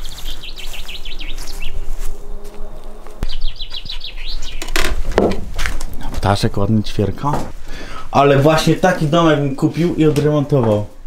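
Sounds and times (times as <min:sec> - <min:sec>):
songbird chirping song: 0:00.0 - 0:05.3.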